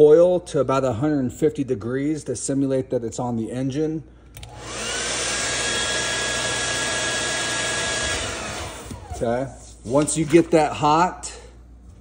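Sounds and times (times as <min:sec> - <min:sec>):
hair dryer blowing: 0:04.4 - 0:09.4.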